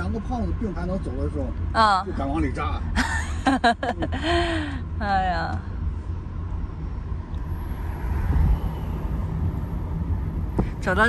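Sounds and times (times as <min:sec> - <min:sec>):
car road rumble inside cabin: 0:04.8 - 0:11.0.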